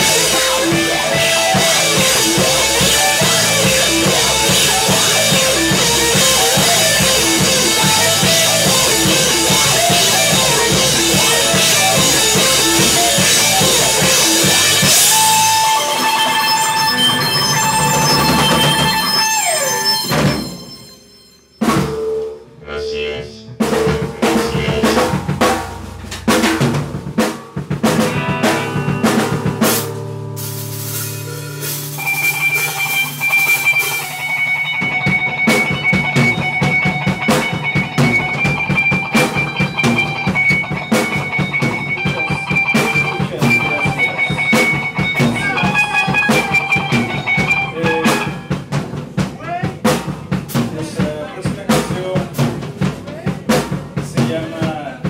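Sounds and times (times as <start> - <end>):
live rock band playing: 0.0 - 55.0.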